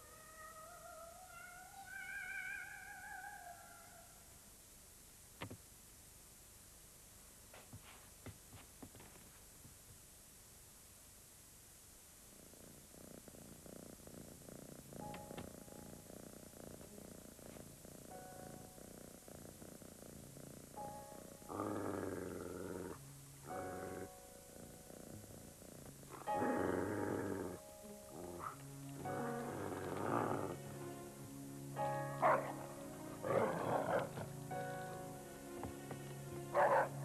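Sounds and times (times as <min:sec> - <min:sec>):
held musical notes: 0:26.2 - 0:37.0.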